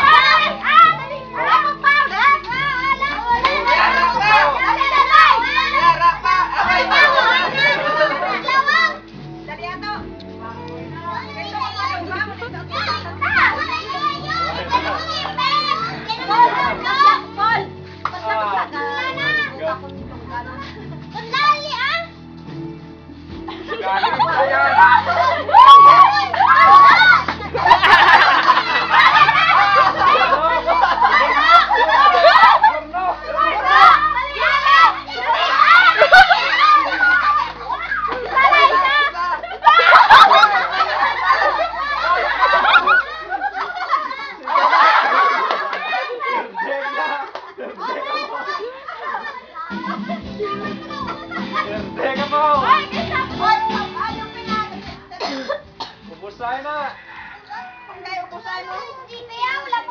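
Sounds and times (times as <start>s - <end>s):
children shouting at play: 0.0s - 9.1s, 10.6s - 19.7s, 20.5s - 22.2s, 23.7s - 51.8s, 52.4s - 55.7s, 56.8s - 59.9s
background music: 0.0s - 57.9s.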